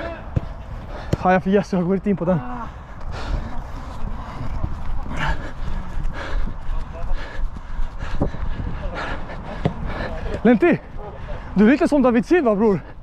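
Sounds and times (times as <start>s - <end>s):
runner breathing hard: 0.4s - 1.9s, 2.5s - 11.6s, 12.7s - 13.0s
wind rumble on microphone: 2.7s - 10.9s.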